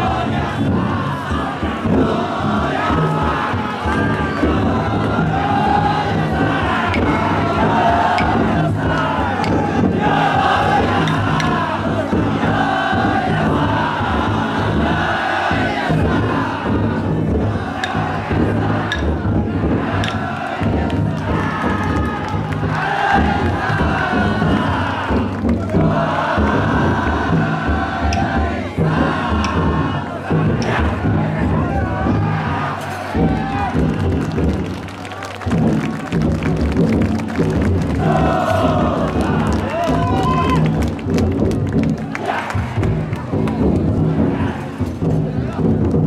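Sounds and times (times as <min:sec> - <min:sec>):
crowd chanting in unison: 0:00.0 - 0:34.6, 0:37.4 - 0:40.9, 0:41.8 - 0:45.9
big drum beating: 0:00.0 - 0:46.0.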